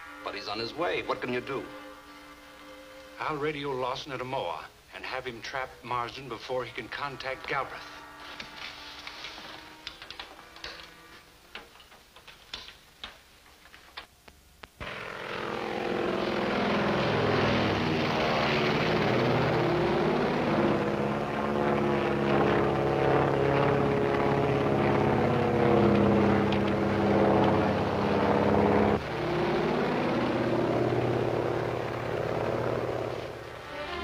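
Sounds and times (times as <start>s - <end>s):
propeller airplane engine droning: 0.0s - 12.3s, 14.8s - 34.0s.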